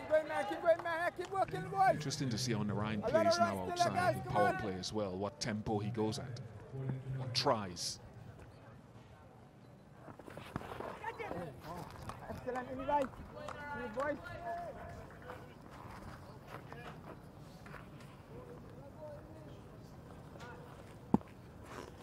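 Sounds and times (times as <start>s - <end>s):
faint open-air ambience: 0.0s - 22.0s.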